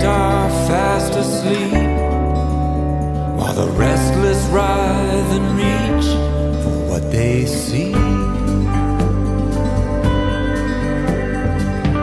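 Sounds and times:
person singing: 0.0 - 9.6
acoustic guitar: 0.0 - 12.0
sustained bass: 0.0 - 12.0.

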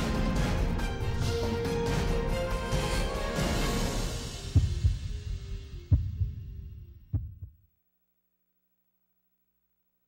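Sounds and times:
deep heavy drum hits: 4.4 - 7.5.

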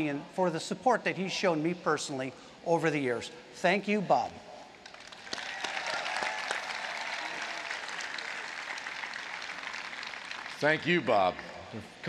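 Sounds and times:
large crowd applauding: 4.8 - 11.4.

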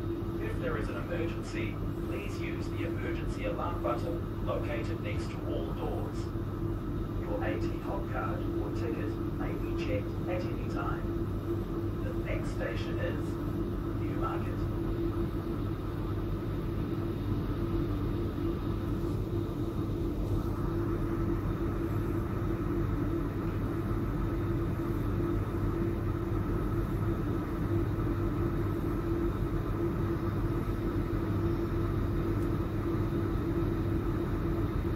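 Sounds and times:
train equipment hum: 0.0 - 34.9.

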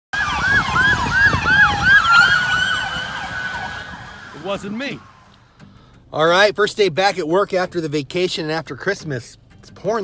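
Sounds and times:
police siren yelping: 0.1 - 5.4
siren sliding down in pitch: 0.1 - 5.4
traffic on wet road: 0.2 - 5.4.

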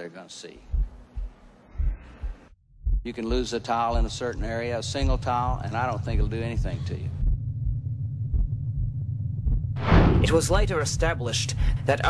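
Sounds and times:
low heartbeat-like thuds: 0.7 - 11.8.

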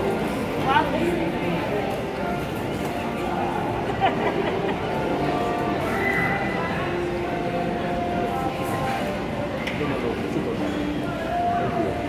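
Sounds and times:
crowd chatter: 0.0 - 12.0
woman laughing: 3.9 - 5.1.

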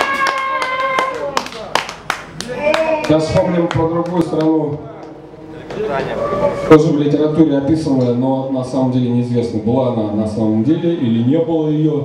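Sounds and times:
audience handclaps: 0.0 - 4.6.

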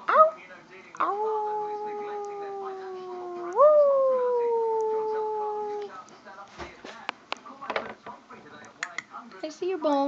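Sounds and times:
dog howling: 1.0 - 5.9.

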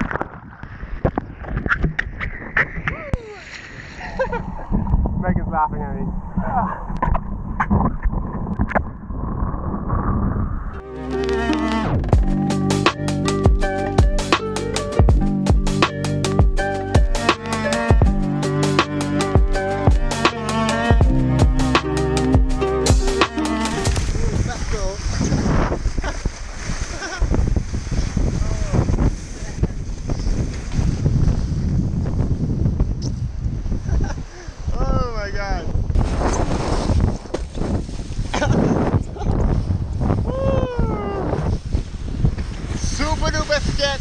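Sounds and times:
wind buffeting microphone: 0.0 - 10.8, 23.8 - 44.0
background music: 10.8 - 24.0.

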